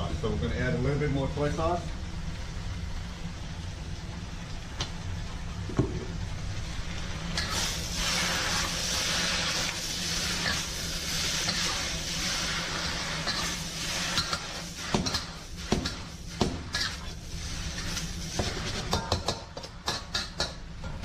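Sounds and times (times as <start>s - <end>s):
noodles sizzling in a wok: 6.2s - 20.8s
utensil knocking on wok: 18.4s - 20.6s.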